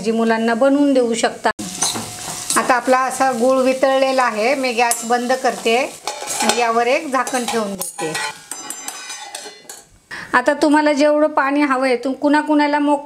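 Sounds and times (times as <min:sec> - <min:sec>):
light frying sizzle: 0:00.0 - 0:09.9
metal spatula scraping a pan: 0:01.7 - 0:02.6, 0:04.0 - 0:09.9.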